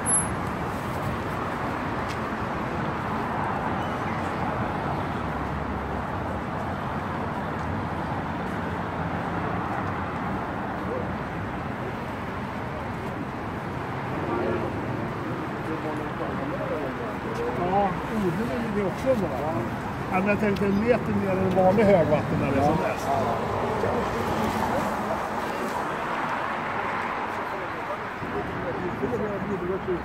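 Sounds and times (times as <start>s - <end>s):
city street traffic hum: 0.0s - 30.0s
people talking: 14.1s - 26.0s, 27.2s - 30.0s.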